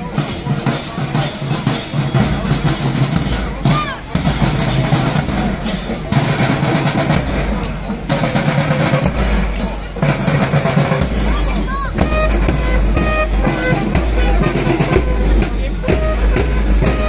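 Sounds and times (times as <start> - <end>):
marching drum band: 0.0 - 17.0
voices: 0.0 - 17.0.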